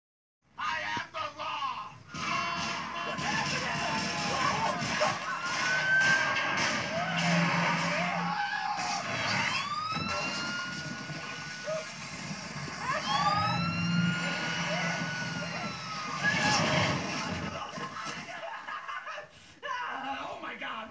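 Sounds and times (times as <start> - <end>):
film sound: 0.6 - 18.9
police siren wailing: 2.1 - 17.8.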